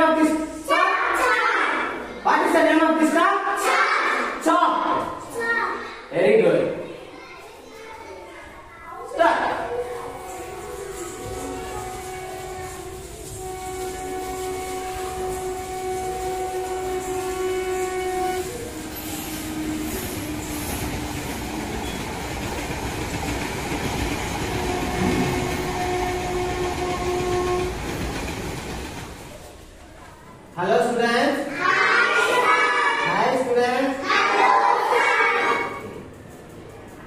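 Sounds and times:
train rumble and rail clatter: 9.7 - 30.0
train horn blast: 9.8 - 21.0, 24.4 - 28.0.

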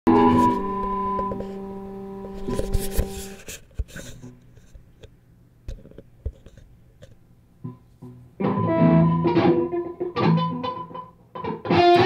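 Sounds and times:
electric guitar chord ringing: 0.1 - 2.3, 8.4 - 12.0.

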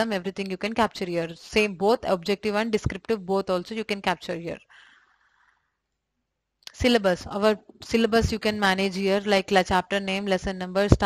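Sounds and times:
woman narrating: 0.0 - 4.7, 6.7 - 11.0.

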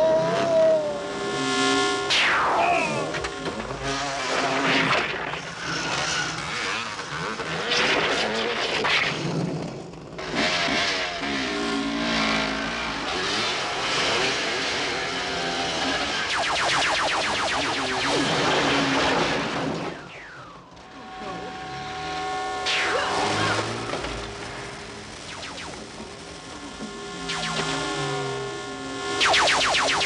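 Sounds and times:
engines revving and passing: 0.0 - 30.0.

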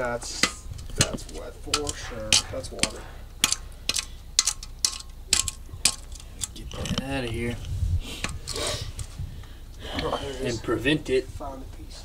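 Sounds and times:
steady ticking clicks: 0.0 - 7.4.

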